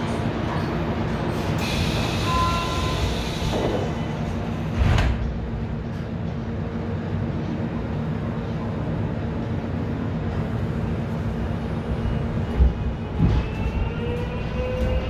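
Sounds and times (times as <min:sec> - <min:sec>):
subway car hum: 0:00.0 - 0:15.0.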